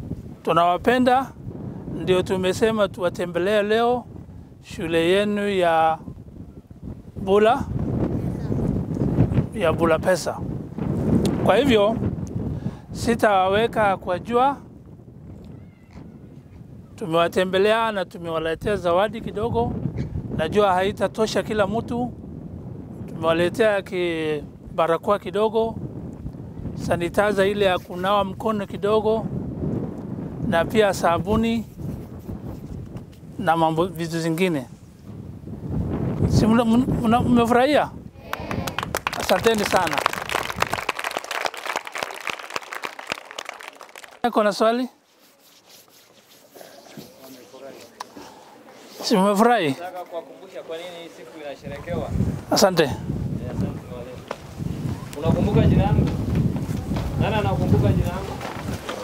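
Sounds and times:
faint high-pitched call: 0:15.5 - 0:16.6
children applauding: 0:38.2 - 0:44.2.

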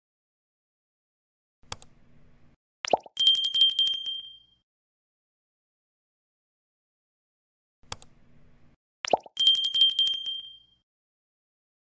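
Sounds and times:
mouse click: 0:01.7 - 0:02.0, 0:07.9 - 0:08.1
notification bell ringing: 0:03.2 - 0:04.6, 0:09.4 - 0:10.8.

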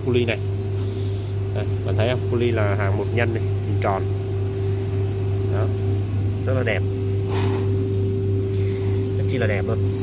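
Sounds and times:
low machine hum: 0:00.0 - 0:10.0
coffee beans rustling: 0:07.2 - 0:07.9, 0:08.5 - 0:10.0.

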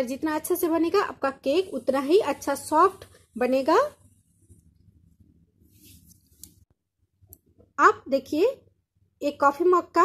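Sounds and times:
woman speaking: 0:00.0 - 0:04.1, 0:07.7 - 0:10.0.

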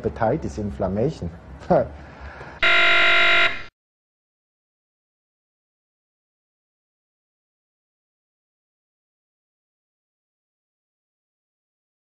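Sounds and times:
loud buzzer tone: 0:02.6 - 0:03.7.

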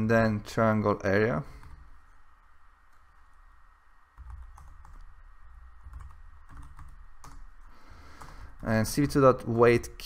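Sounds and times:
low hum: 0:00.0 - 0:10.0
computer keyboard typing: 0:04.2 - 0:05.2, 0:05.8 - 0:09.2.

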